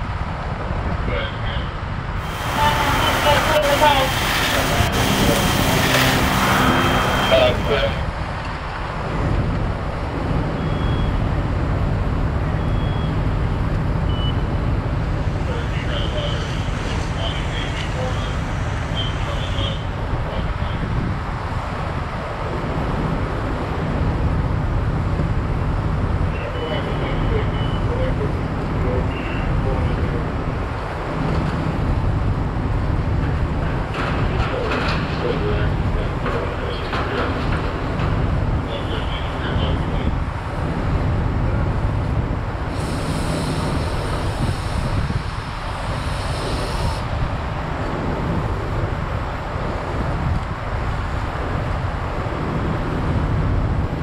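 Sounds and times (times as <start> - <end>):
fire engines running: 0.0 - 54.0
short high beeps: 6.6 - 7.7.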